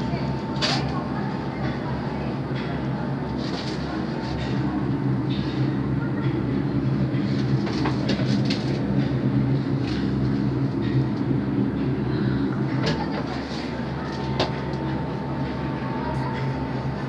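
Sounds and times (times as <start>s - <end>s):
cable car machinery humming: 0.0s - 17.0s.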